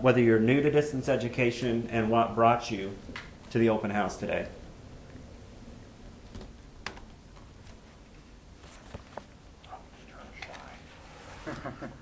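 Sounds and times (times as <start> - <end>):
faint whispering voices: 9.6 - 11.3.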